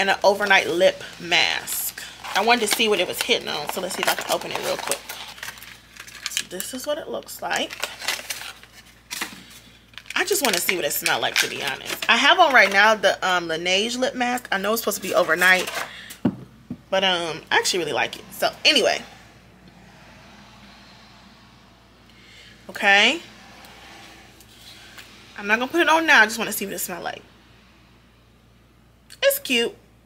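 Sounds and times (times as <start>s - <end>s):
packaging rustling: 2.0s - 6.6s, 7.5s - 12.8s.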